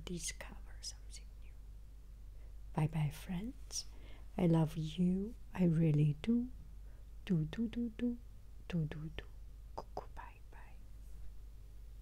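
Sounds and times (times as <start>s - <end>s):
low room hum: 0.0s - 12.0s
woman whispering coo: 7.4s - 10.8s.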